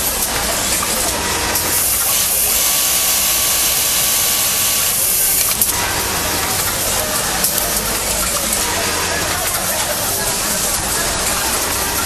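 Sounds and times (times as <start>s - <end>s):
loud air hiss: 0.0s - 12.0s
sewing machine running: 0.0s - 12.0s.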